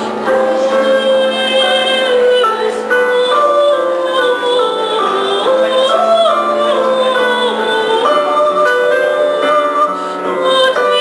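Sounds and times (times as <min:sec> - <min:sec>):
instrumental accompaniment: 0:00.0 - 0:11.0
woman singing: 0:00.0 - 0:11.0.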